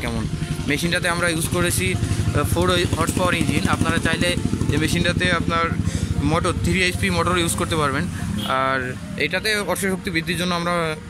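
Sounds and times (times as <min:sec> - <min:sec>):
small diesel engine running: 0:00.0 - 0:08.4
man talking: 0:00.0 - 0:11.0.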